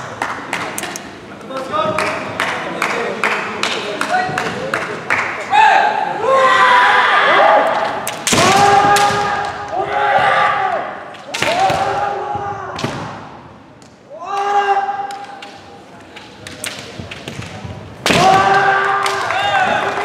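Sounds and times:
people shouting: 0:05.5 - 0:12.8, 0:14.1 - 0:15.4, 0:18.1 - 0:20.0
bamboo swords striking: 0:08.0 - 0:09.6, 0:11.1 - 0:12.1, 0:14.3 - 0:19.3.

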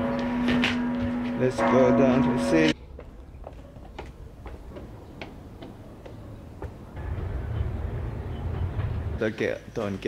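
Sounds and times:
footsteps on concrete steps: 0:00.0 - 0:07.0.

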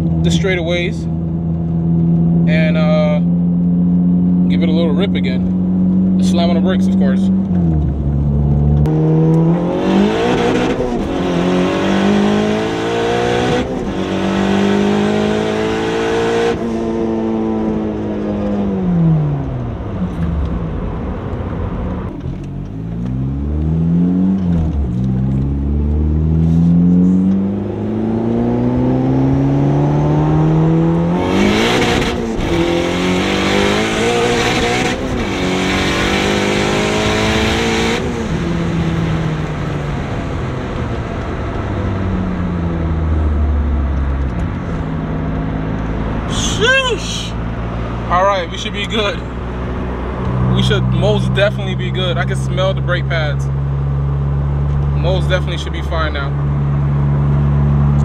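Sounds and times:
car engine accelerating hard: 0:00.0 - 0:58.0.

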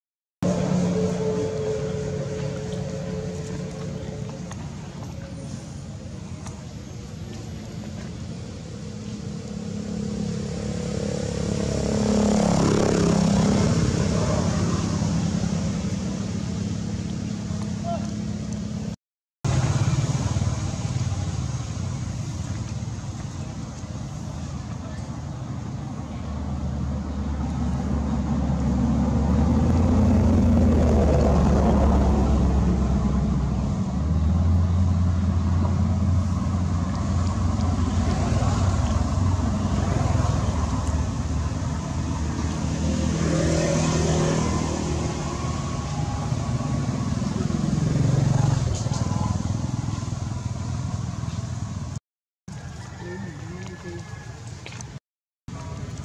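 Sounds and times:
vehicle engines rumbling: 0:00.4 - 0:56.0.

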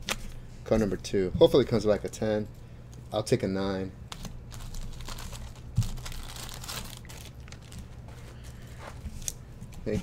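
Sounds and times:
plastic bag and card sleeves crinkling: 0:04.1 - 0:08.1.

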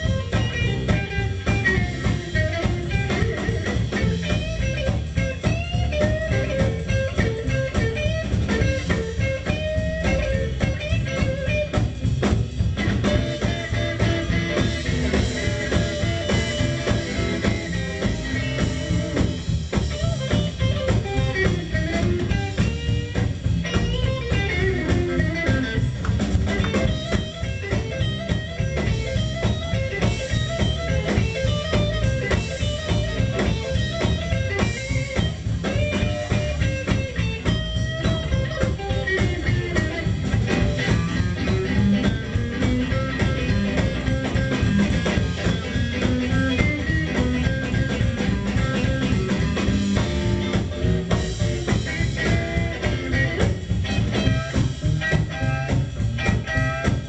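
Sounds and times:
drum kit steady beat: 0:00.0 - 0:57.0
electric guitar lead line: 0:00.0 - 0:57.0
upright bass walking: 0:00.0 - 0:57.0.

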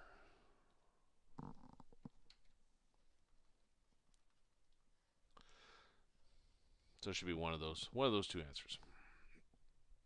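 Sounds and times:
faint soft noises: 0:00.0 - 0:10.0.

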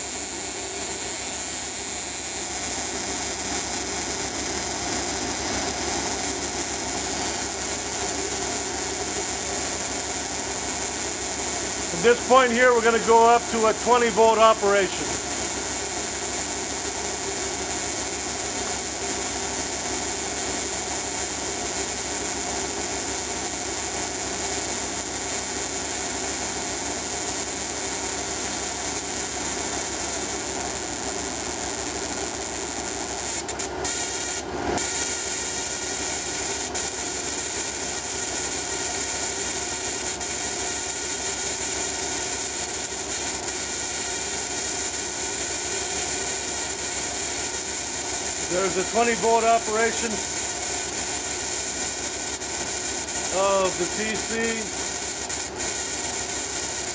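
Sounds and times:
high hiss: 0:11.9 - 0:15.5, 0:53.2 - 0:54.8.

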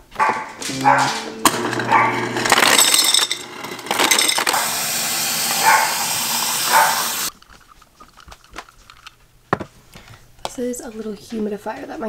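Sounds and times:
ice dropping into glass jar: 0:01.8 - 0:05.6.

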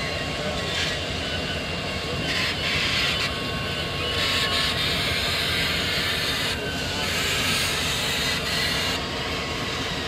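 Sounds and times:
steam train wheels rumbling on rail: 0:00.0 - 0:10.0.

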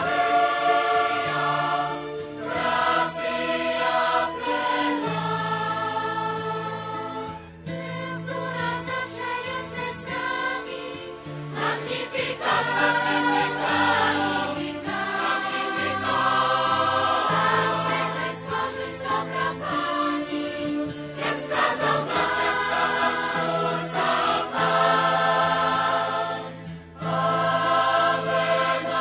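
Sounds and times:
choir singing sacred music: 0:00.0 - 0:29.0.

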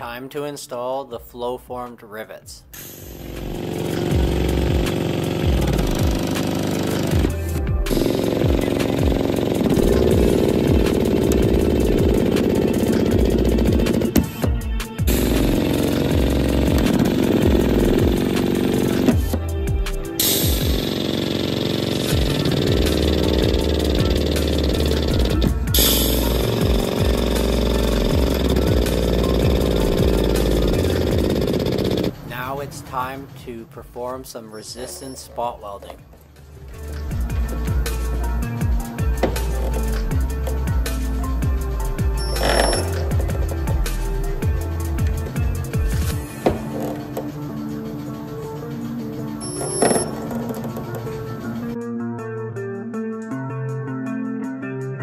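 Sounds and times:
background music with steady beat: 0:00.0 - 0:55.0.

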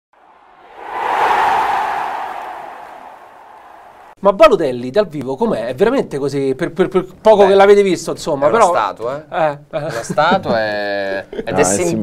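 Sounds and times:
whoosh sound effect: 0:00.3 - 0:04.2.

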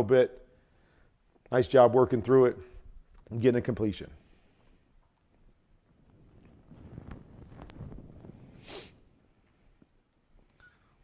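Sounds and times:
sharp breath near microphone: 0:00.6 - 0:01.2, 0:08.6 - 0:09.0
faint low rumble: 0:05.8 - 0:09.9.

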